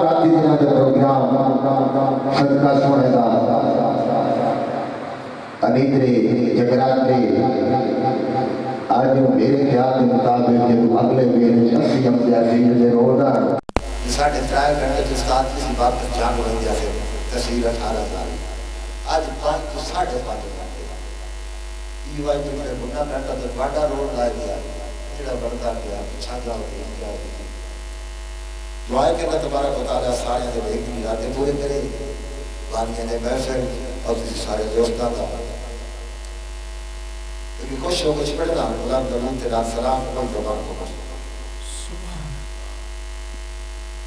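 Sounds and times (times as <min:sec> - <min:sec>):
low electrical hum: 0:00.0 - 0:44.0
man speaking over pa system: 0:05.6 - 0:21.0, 0:22.0 - 0:27.4, 0:28.9 - 0:35.8, 0:37.6 - 0:42.4.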